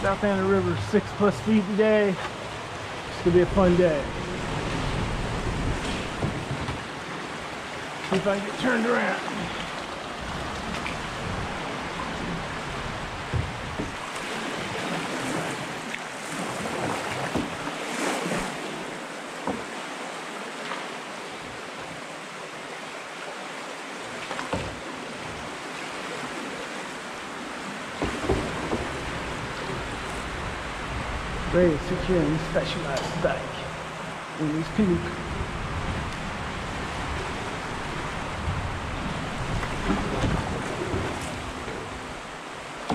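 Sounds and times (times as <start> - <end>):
river water rushing and splashing: 0.0 - 42.9
light knocks on canoe: 5.4 - 7.0, 13.2 - 14.2, 16.8 - 17.7, 19.4 - 19.8, 24.2 - 25.4, 28.0 - 30.3, 39.5 - 42.0.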